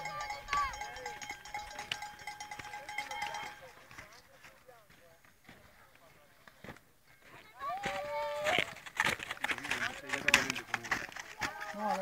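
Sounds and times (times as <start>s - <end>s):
people talking outdoors: 0.0s - 12.0s.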